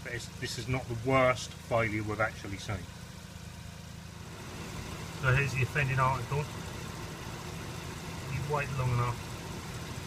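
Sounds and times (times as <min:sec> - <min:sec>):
rotary engine idling: 0:00.0 - 0:10.0.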